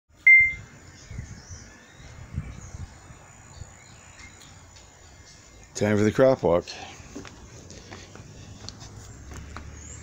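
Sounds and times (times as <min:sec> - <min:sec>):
short high electronic beep: 0:00.2 - 0:00.6.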